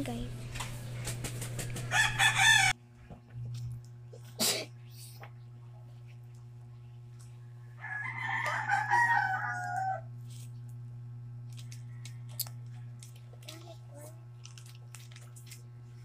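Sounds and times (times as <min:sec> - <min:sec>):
low steady hum: 0:00.0 - 0:16.0
rooster crowing: 0:01.9 - 0:02.8, 0:07.6 - 0:10.1.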